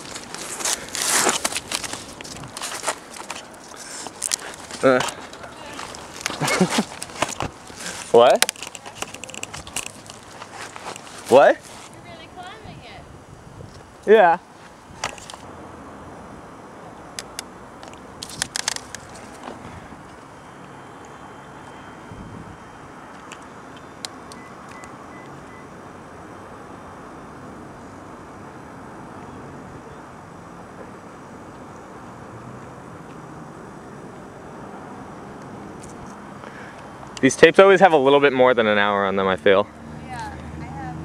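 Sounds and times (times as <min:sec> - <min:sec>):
twigs and bark cracking: 0:00.0 - 0:12.0, 0:17.2 - 0:20.2
outdoor background rumble: 0:38.7 - 0:41.0.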